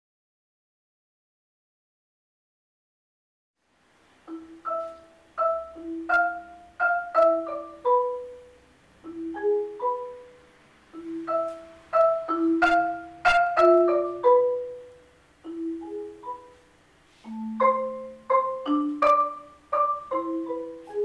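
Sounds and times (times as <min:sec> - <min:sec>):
solo marimba: 0:04.2 - 0:21.0.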